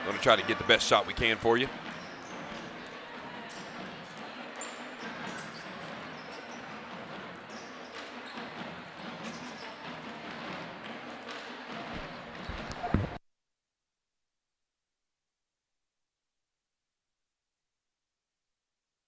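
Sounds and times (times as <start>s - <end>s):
crowd chatter: 0.0s - 13.2s.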